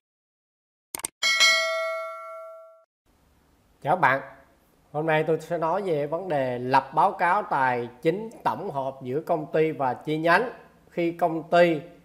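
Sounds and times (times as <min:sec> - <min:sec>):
bell chime: 0:01.2 - 0:02.8.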